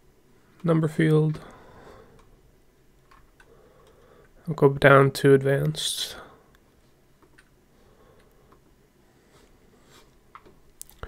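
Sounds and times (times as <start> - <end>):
quiet room noise: 0.0 - 11.0.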